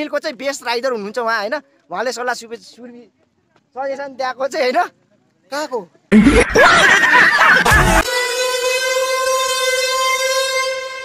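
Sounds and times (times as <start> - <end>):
steady electronic tone: 6.1 - 6.8, 7.6 - 8.0.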